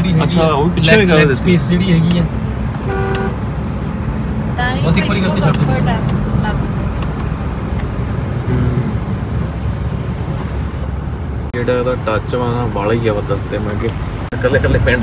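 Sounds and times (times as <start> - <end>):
car cabin road and engine noise: 0.0 - 15.0.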